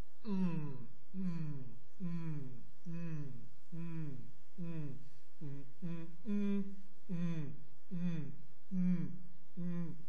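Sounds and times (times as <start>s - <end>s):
man humming: 0.2s - 10.0s.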